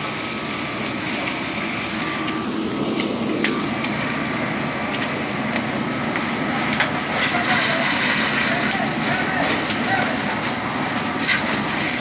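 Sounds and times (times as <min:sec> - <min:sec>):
fire rushing: 0:00.0 - 0:12.0
sharp cracks and pops: 0:04.9 - 0:12.0.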